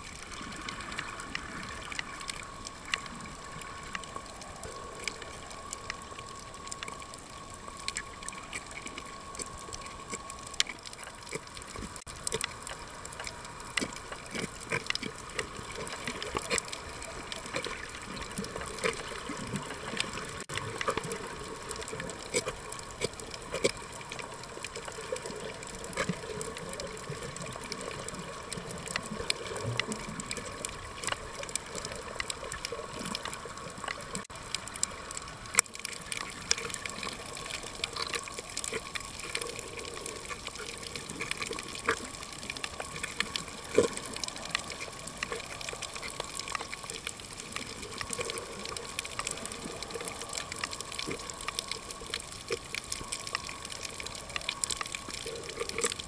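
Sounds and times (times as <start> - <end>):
sharp underwater clicks: 0.0 - 56.0
underwater rushing water hiss: 0.0 - 56.0.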